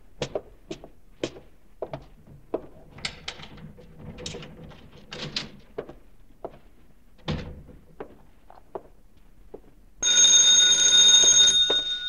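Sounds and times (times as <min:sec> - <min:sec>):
electric bell ringing: 0:10.0 - 0:12.0.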